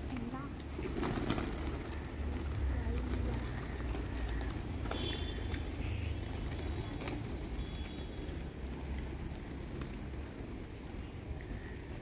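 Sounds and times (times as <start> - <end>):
pigeons flapping wings: 0.0 - 12.0.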